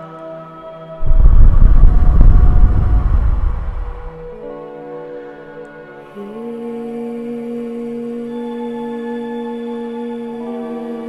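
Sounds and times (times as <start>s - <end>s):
soft music: 0.0s - 11.0s
deep rumbling noise: 1.0s - 4.4s.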